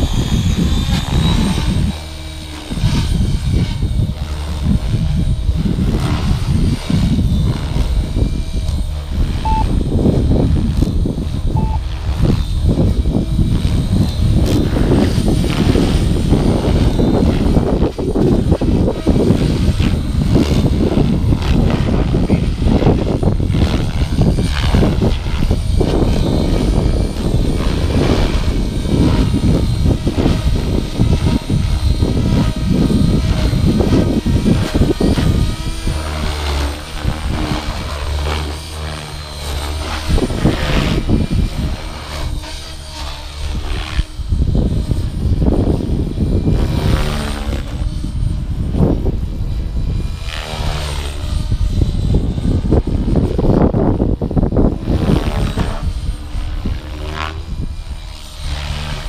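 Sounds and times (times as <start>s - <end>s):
rc helicopter rotor and motor whine: 0.0s - 59.0s
wind rumbling on microphone: 0.0s - 59.0s.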